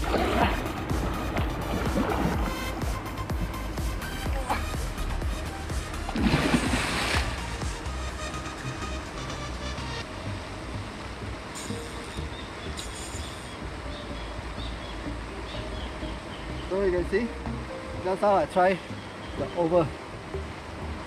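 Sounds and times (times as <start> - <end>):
background music with low beat: 0.0 - 21.0
fish splashing in water: 6.0 - 7.5.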